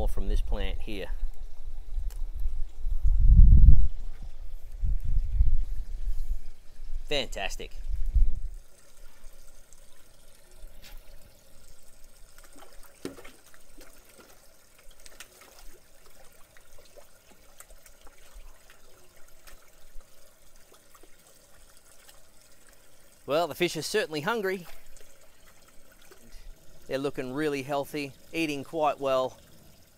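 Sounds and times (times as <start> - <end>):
water trickling and splashing: 0.0 - 29.9.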